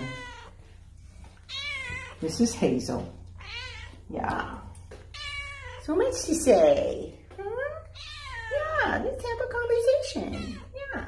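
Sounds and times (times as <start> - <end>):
cat meowing: 0.0 - 0.6, 1.5 - 2.2, 3.4 - 4.0, 5.1 - 5.9, 7.9 - 8.6.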